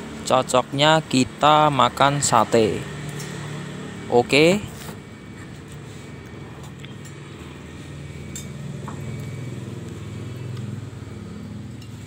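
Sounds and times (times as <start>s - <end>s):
passing road vehicle engine hum: 0.0s - 12.0s.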